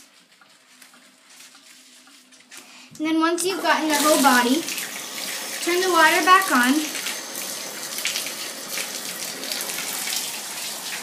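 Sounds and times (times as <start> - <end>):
water running into a bath: 3.0 - 11.0
water splashing: 3.6 - 11.0.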